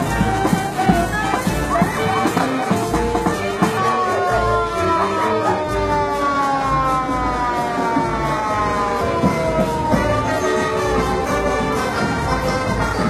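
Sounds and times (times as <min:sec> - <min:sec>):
fire truck siren wailing: 0:00.0 - 0:13.0.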